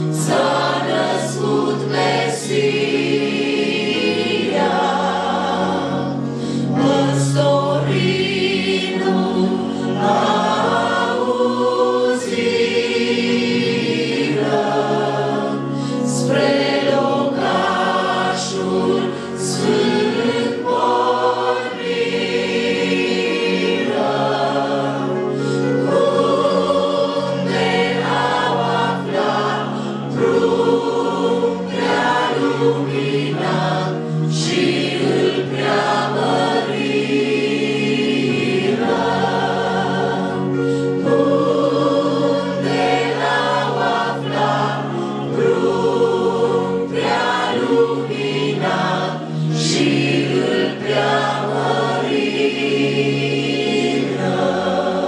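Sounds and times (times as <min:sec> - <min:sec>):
congregation singing a carol: 0:00.0 - 0:55.0.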